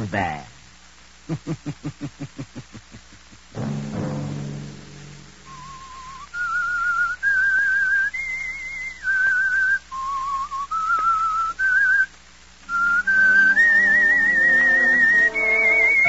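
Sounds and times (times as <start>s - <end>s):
person whistling a slow melody: 5.5s - 12.1s, 12.7s - 16.0s
orchestra playing: 12.9s - 16.0s.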